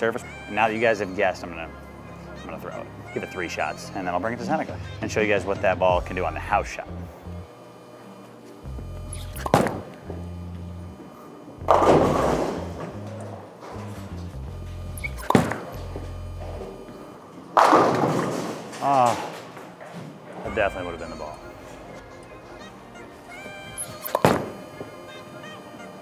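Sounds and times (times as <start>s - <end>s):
background music: 0.0s - 19.1s, 20.3s - 26.0s
bowling pins clattering: 17.4s - 22.6s.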